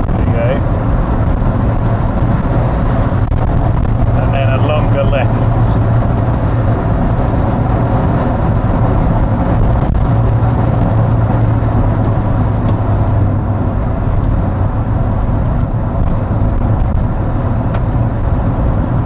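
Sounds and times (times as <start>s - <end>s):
car engine drone: 0.0s - 19.0s
tyre and road noise: 0.0s - 19.0s.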